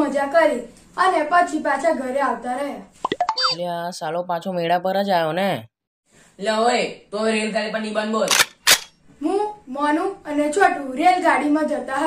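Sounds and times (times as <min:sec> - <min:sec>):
boy speaking: 0:00.0 - 0:03.7, 0:09.2 - 0:12.0
cartoon plop sound effect: 0:03.0 - 0:03.6.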